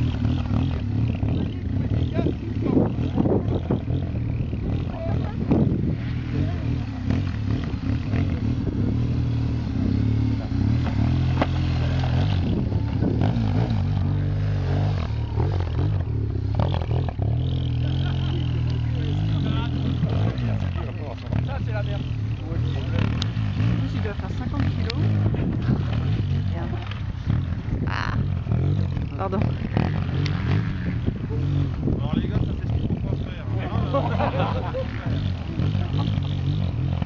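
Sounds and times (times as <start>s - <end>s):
motorcycle engine at low revs: 0.0s - 37.0s.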